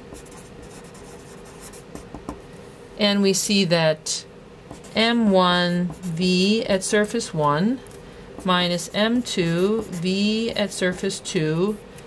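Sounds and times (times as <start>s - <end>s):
marker writing on paper: 0.1s - 2.3s.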